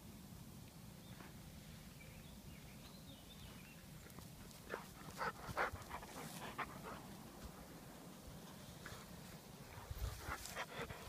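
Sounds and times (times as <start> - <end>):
dog panting: 4.5 - 7.7, 9.8 - 11.0.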